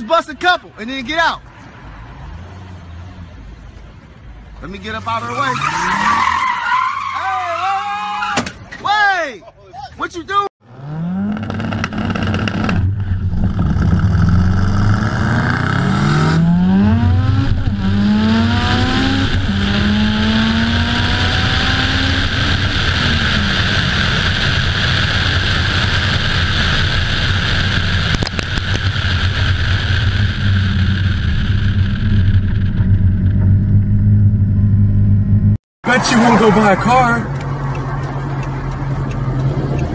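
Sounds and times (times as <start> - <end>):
wind and road roar: 0.0 - 39.9
car engine accelerating through gears: 10.6 - 39.9.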